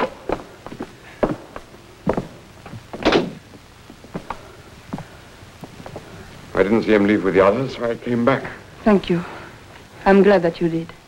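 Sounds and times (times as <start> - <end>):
footsteps on wooden stairs: 0.0 - 6.1
door thud: 3.0 - 3.4.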